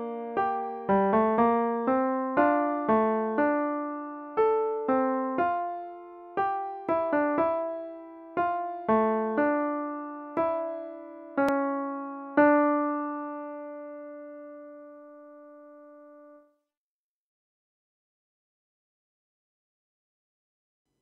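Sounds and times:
piano counterpoint: 0.0s - 16.4s.

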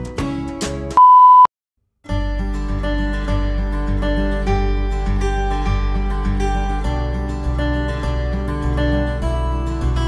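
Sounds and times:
electronic beep: 1.0s - 1.5s
plucked-string background music: 2.1s - 10.0s.

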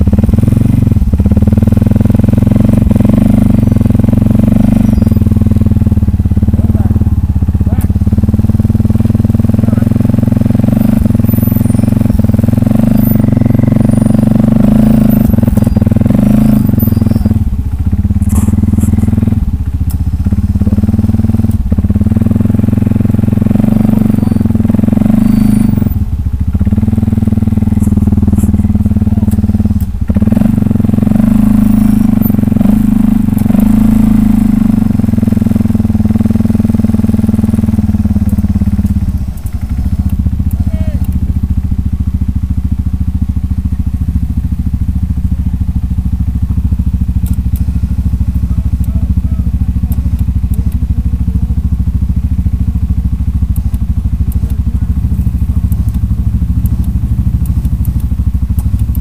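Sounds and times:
engine idling: 0.0s - 59.0s.

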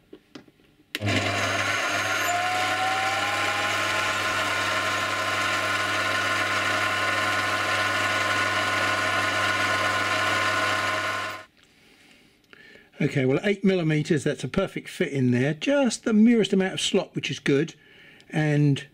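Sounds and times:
drill boring into plastic: 1.0s - 11.5s
lathe motor whining: 1.0s - 11.5s.

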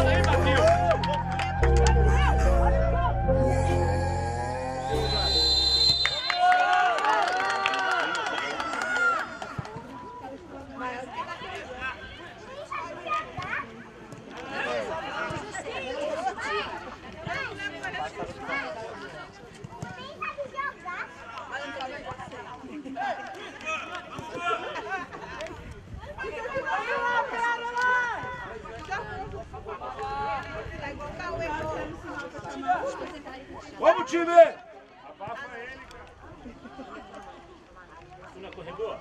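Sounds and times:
intro music: 0.0s - 6.2s.

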